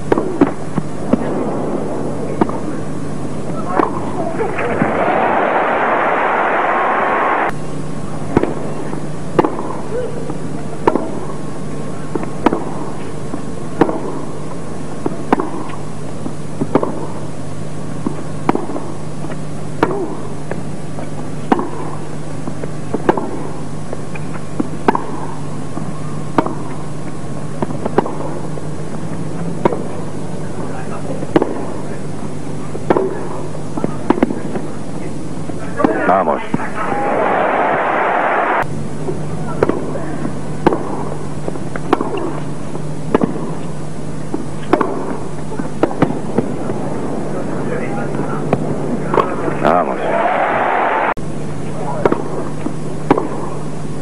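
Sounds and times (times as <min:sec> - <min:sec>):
low hum: 0:00.0 - 0:18.0, 0:36.4 - 0:54.0
tennis racquets hitting ball: 0:00.1 - 0:01.2, 0:02.3 - 0:02.8, 0:03.5 - 0:05.0, 0:08.3 - 0:09.9, 0:10.8 - 0:11.4, 0:12.1 - 0:15.8, 0:16.6 - 0:17.2, 0:18.0 - 0:32.0, 0:32.7 - 0:34.8, 0:35.5 - 0:36.8, 0:39.5 - 0:43.7, 0:44.3 - 0:46.8, 0:48.1 - 0:49.6, 0:52.0 - 0:53.6
crowd noise: 0:00.9 - 0:07.6, 0:29.8 - 0:40.7, 0:45.5 - 0:52.0.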